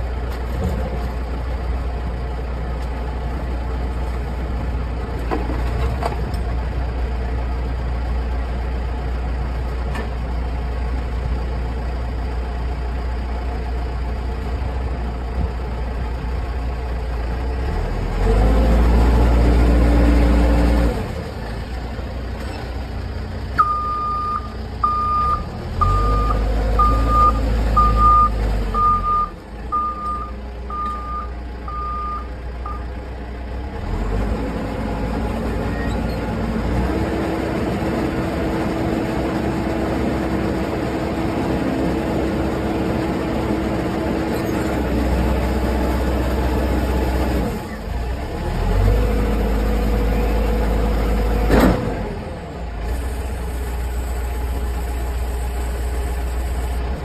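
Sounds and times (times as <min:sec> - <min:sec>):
diesel engine running: 0:00.0 - 0:57.0
reversing alarm beeping: 0:23.6 - 0:32.8.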